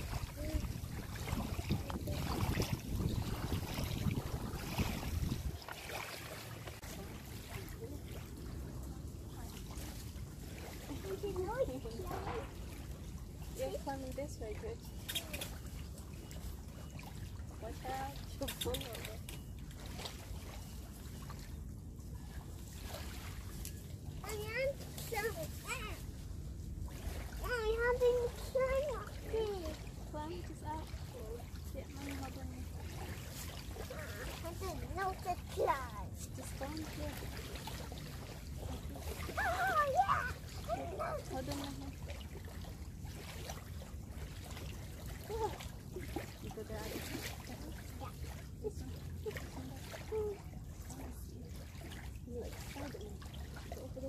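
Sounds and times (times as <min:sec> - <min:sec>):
water: 0:00.0 - 0:54.0
wind: 0:00.0 - 0:54.0
children calling and chattering: 0:39.0 - 0:41.8.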